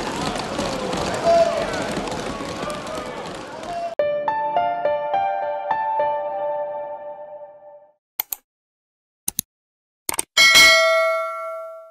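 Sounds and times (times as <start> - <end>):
notification bell ding: 10.4 - 11.9.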